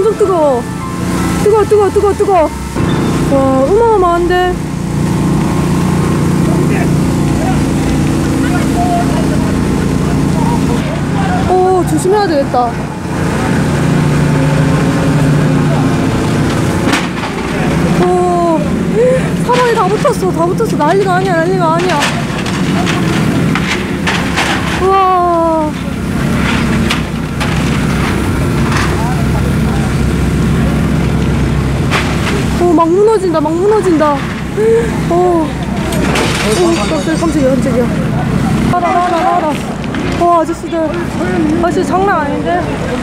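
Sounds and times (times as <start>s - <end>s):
engine running steadily: 0.0s - 43.0s
people's voices: 0.0s - 43.0s
faint distant shouting voices: 6.7s - 13.0s.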